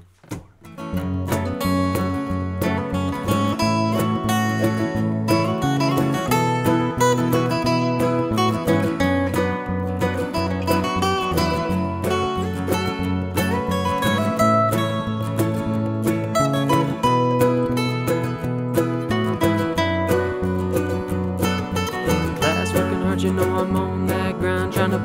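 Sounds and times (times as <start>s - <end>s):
strummed acoustic guitar music: 0.0s - 25.0s.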